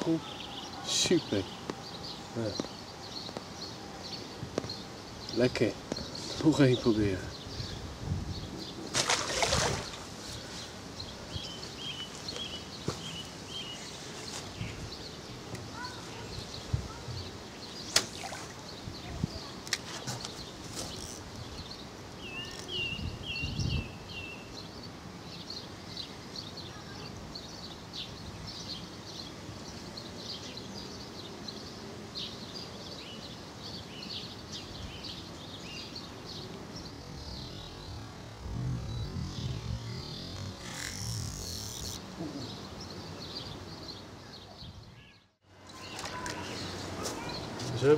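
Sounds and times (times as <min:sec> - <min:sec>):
small birds chirping: 0:00.0 - 0:47.9
steady outdoor hum: 0:00.0 - 0:47.9.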